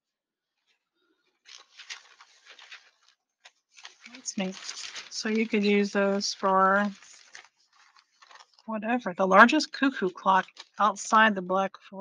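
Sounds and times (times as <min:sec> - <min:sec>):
newspaper rustling: 0:00.6 - 0:08.7, 0:09.3 - 0:11.2.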